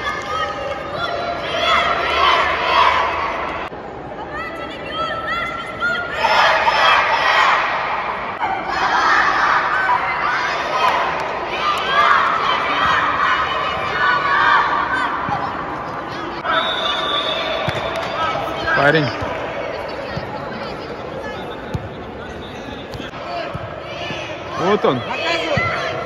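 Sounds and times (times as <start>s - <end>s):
boys shouting a team cheer: 0.0s - 20.3s, 23.1s - 26.0s
long whistle blast: 16.4s - 17.9s.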